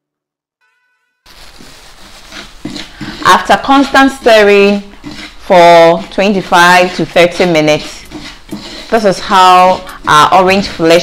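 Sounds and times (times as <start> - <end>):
gloved hand rustling in dry grains: 1.3 - 3.4.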